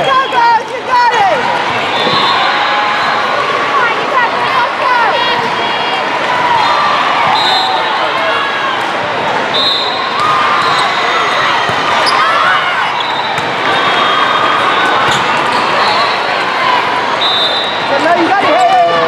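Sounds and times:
din of many voices: 0.0s - 19.0s
sneakers squeaking on court floor: 9.8s - 16.2s.

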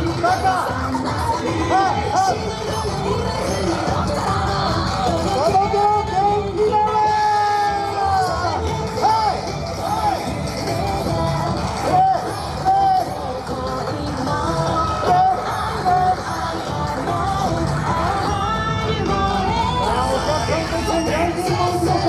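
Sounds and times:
dance music with sung vocals: 0.0s - 22.0s.

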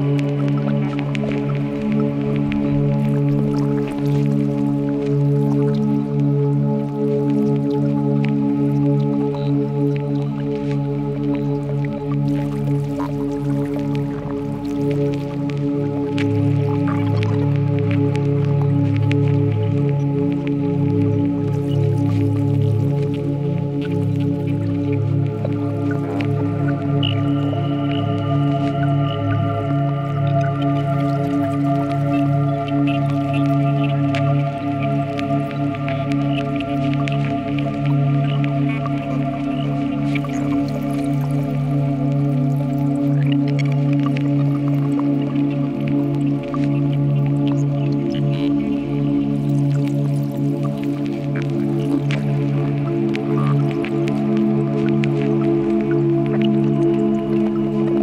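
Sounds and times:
low synthesizer drone: 0.0s - 58.0s.

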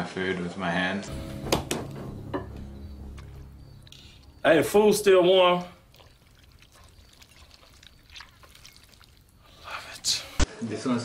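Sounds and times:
quiet background music: 1.0s - 8.6s.

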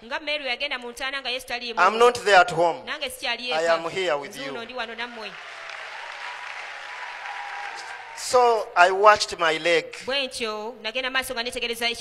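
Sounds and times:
congregation applauding: 3.5s - 9.4s.

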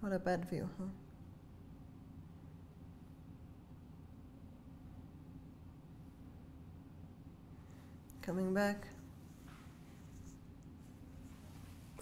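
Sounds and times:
low room hum: 0.0s - 12.0s
clothing rustling on a mat: 9.0s - 12.0s.

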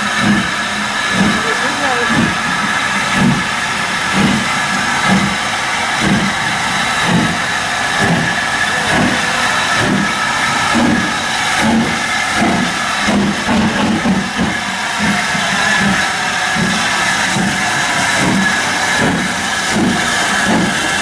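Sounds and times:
steam hissing: 0.0s - 21.0s
steam locomotive exhaust chuffs: 0.0s - 21.0s.

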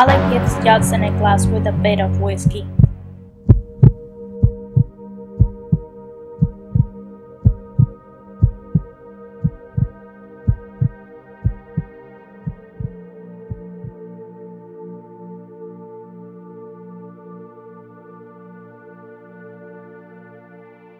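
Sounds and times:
steady low drone: 0.0s - 16.0s
heartbeat thumps: 1.5s - 11.9s, 12.5s - 14.0s.

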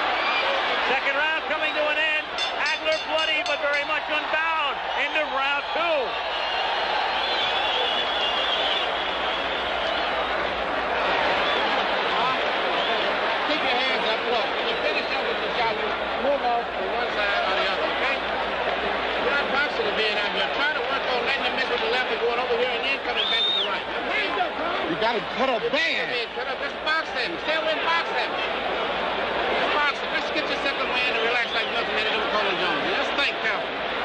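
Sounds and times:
crowd shouting: 0.0s - 34.0s.

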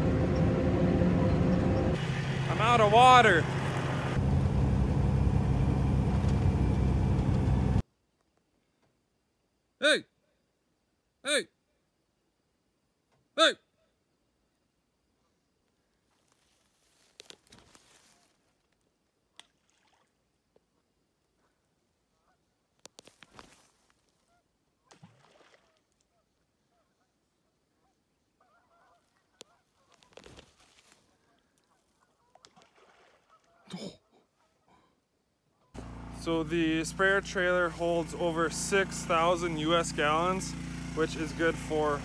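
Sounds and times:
man calling out hey: 2.5s - 3.5s, 9.8s - 10.2s, 11.2s - 11.6s, 13.4s - 13.7s
splash: 19.4s - 20.3s, 24.8s - 26.0s, 32.3s - 33.6s
faint waterfowl calling: 21.4s - 22.6s, 23.3s - 35.8s.

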